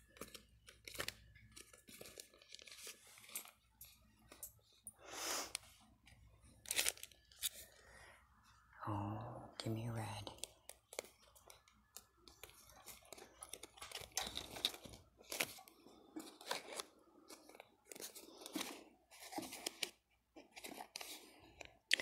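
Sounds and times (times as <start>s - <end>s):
plastic packaging crinkling: 0.0s - 4.8s, 5.5s - 7.8s, 10.4s - 22.0s.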